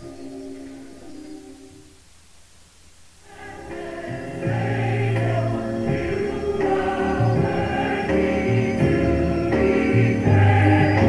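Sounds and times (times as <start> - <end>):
gospel choir with instruments: 3.2 - 11.0.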